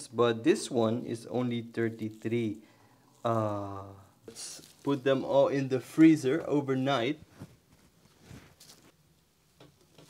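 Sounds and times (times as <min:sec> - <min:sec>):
handling knocks and rustles: 0:07.2 - 0:09.0.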